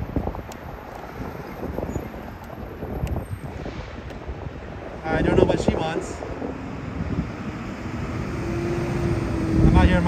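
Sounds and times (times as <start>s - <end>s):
low traffic rumble: 0.0s - 10.0s
vehicle engine hum: 0.0s - 10.0s.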